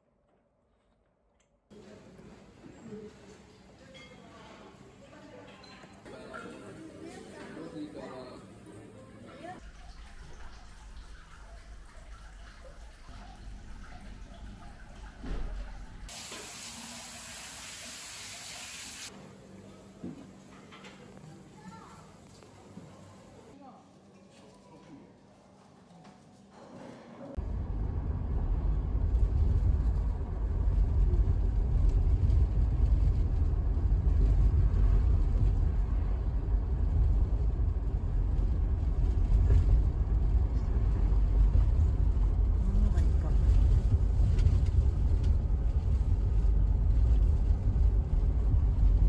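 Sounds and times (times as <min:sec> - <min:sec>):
water running into bath: 0:09.6 - 0:19.1
low rumble: 0:27.4 - 0:49.0.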